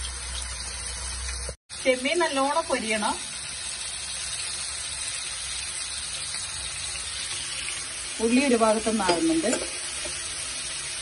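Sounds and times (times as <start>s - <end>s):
prawns sizzling in a frying pan: 0.0s - 11.0s.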